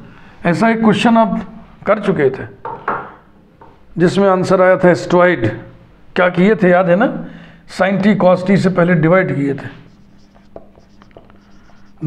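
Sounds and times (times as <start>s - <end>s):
faint steady hum: 0.0s - 12.0s
marker pen writing on whiteboard: 9.8s - 12.0s.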